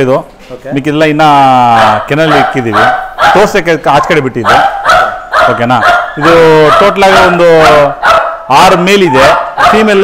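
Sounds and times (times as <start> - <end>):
dogs barking: 1.6 - 10.0.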